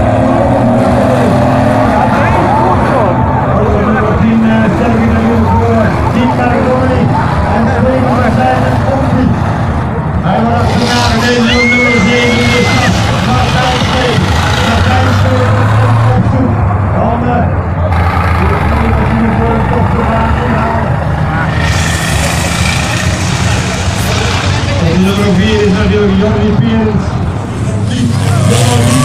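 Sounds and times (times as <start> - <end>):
diesel engines running hard: 0.0 - 29.0
announcer over loudspeaker: 10.2 - 21.9, 23.8 - 27.2, 27.8 - 29.0.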